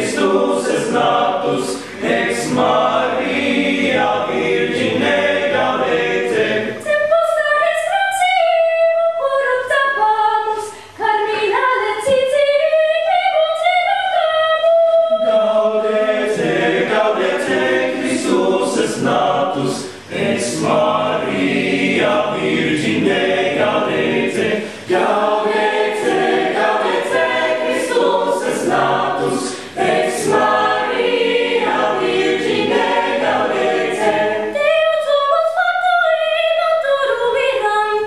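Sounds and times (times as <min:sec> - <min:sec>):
choir singing unaccompanied: 0:00.0 - 0:37.7.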